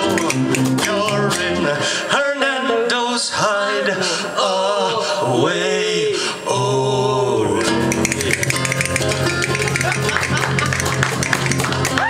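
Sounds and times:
acoustic guitar band playing: 0.0s - 3.0s, 7.1s - 12.0s
people clapping: 8.1s - 12.0s.

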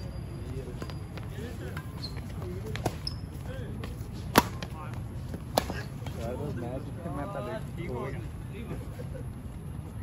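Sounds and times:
voices talking: 0.0s - 10.0s
rackets hitting shuttlecock: 1.6s - 3.2s, 3.8s - 6.2s.

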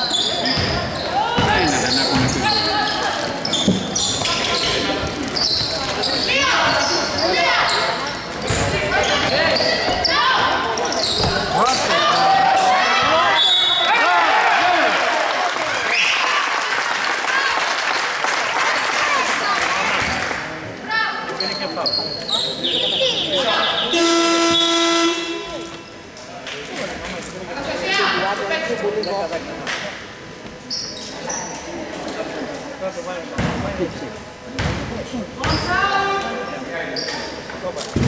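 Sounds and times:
shoes squeaking: 0.0s - 12.7s
scoreboard buzzer: 23.7s - 25.9s.

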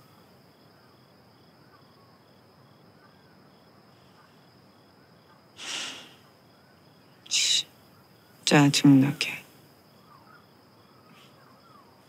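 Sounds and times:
crickets chirping: 0.0s - 12.0s
steady high insect trill: 0.0s - 12.0s.

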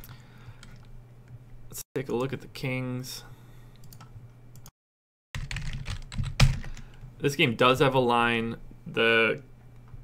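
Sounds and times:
computer keyboard typing: 5.4s - 6.9s.

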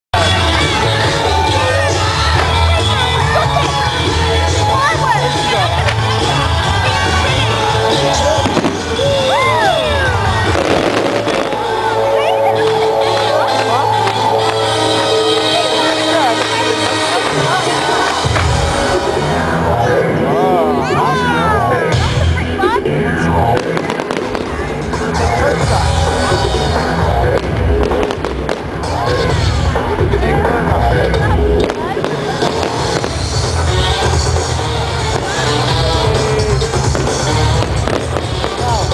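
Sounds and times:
background music: 0.1s - 38.9s
firework sharp report: 0.2s - 19.6s, 23.5s - 29.8s, 31.6s - 38.9s
firework crackling burst: 8.1s - 12.0s, 23.6s - 24.9s, 31.6s - 38.9s.

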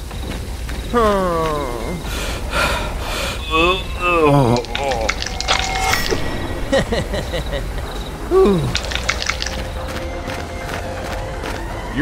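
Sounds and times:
faint steady background tones: 0.0s - 12.0s.

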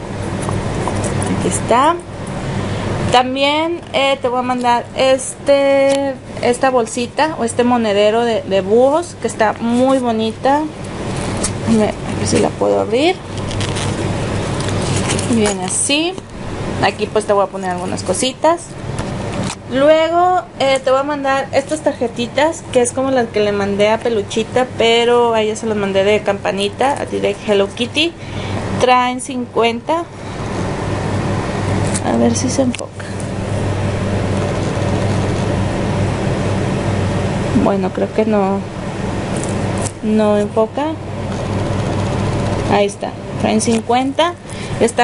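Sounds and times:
steady background hum: 0.0s - 45.0s.

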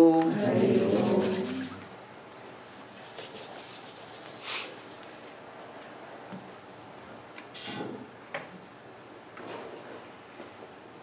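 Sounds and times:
hands rubbing together: 0.3s - 1.9s, 2.8s - 5.1s.

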